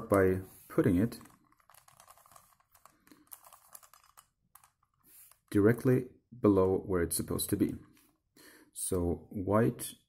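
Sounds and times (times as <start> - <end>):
puzzle cube clicking: 1.2 - 5.5.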